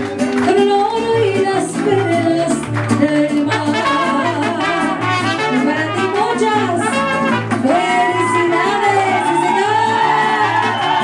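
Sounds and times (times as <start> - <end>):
trumpets playing melody: 3.5 - 7.8.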